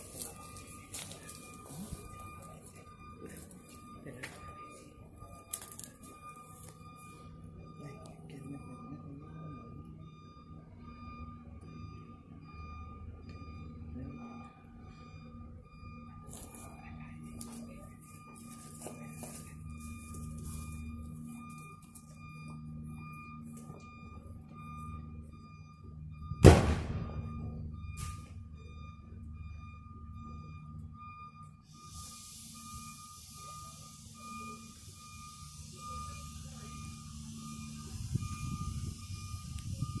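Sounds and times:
faint pulsing high tone: 0.0s - 40.0s
launcher gunshot: 26.4s - 27.4s, 28.0s - 28.3s.

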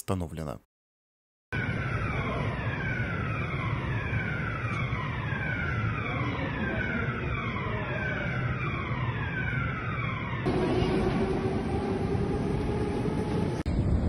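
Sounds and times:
alarm with falling tone: 1.5s - 13.7s
steady rumble: 10.5s - 14.0s.

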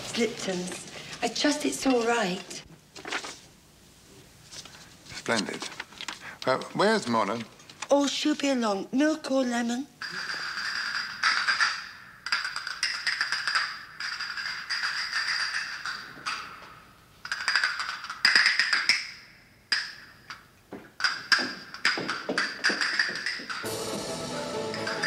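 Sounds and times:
castanets clicking: 10.3s - 16.6s, 17.2s - 20.4s, 21.0s - 23.6s
musical accompaniment: 23.6s - 25.0s.

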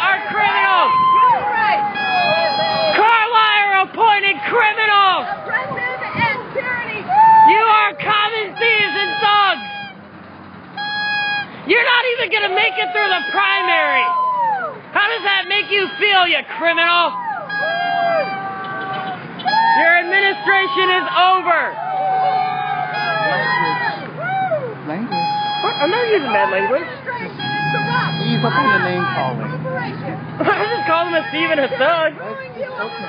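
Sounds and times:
man shouting: 0.0s - 5.3s, 7.2s - 9.7s, 11.7s - 14.3s, 15.0s - 18.8s, 19.5s - 24.8s, 27.8s - 29.4s
people talking: 0.0s - 9.7s, 11.7s - 14.1s, 15.0s - 21.8s, 23.0s - 24.1s, 24.9s - 33.0s
road traffic passing: 0.0s - 33.0s
steady pitched tone: 25.0s - 29.6s.

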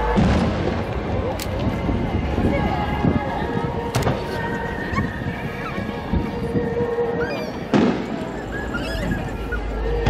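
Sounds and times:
fireworks bang: 0.0s - 1.7s, 7.7s - 8.2s
onlookers' voices: 0.0s - 10.0s.

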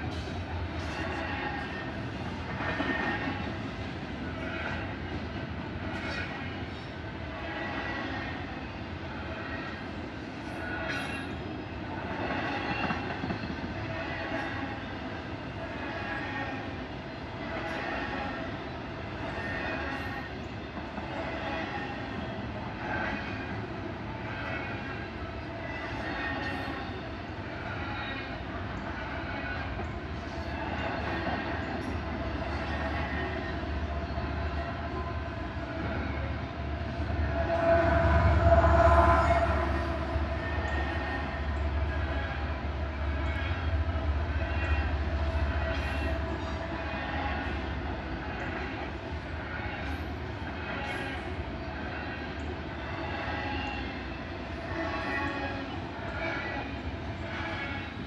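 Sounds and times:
freight train rumbling past: 0.0s - 58.0s.

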